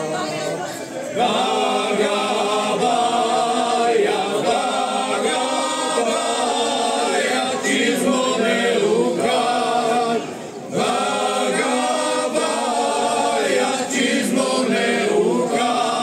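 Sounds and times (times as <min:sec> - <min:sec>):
men singing a cappella: 0:01.2 - 0:16.0.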